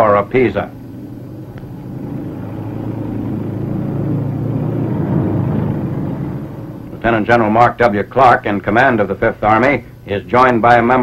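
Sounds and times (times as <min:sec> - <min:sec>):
armored vehicle rumbling past: 0:00.7 - 0:07.3.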